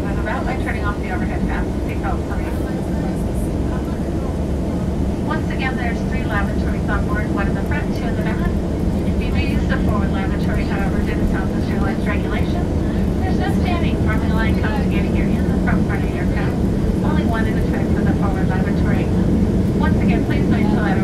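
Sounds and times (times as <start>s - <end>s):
person talking: 0.0s - 4.4s, 5.3s - 19.2s, 19.8s - 21.0s
airliner cabin engine roar: 0.0s - 21.0s.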